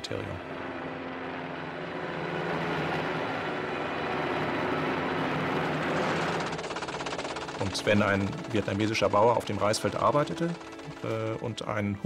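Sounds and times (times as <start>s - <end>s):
helicopter rotor and engine noise: 0.0s - 12.0s
fast even pulsing: 5.4s - 12.0s.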